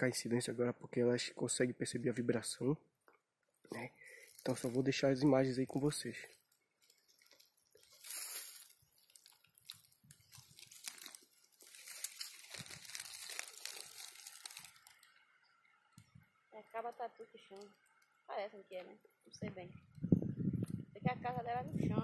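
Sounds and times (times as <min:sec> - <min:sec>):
footsteps on dry leaves: 0:04.0 - 0:15.1.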